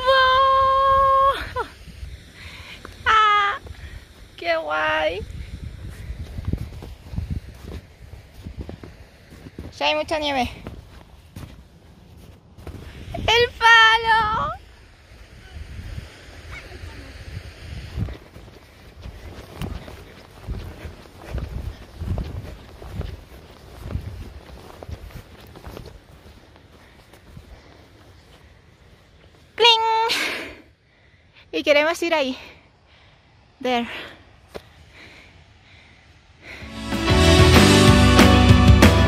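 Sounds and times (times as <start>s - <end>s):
footsteps on snow: 1.1s - 29.6s.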